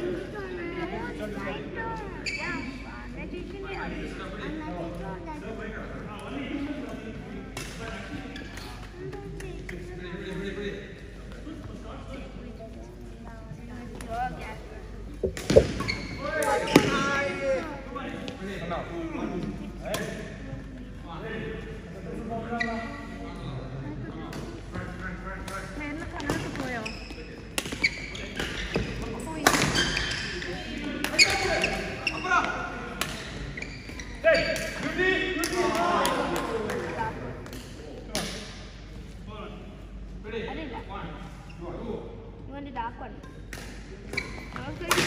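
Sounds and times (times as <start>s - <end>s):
people talking and calling out: 0.0s - 45.0s.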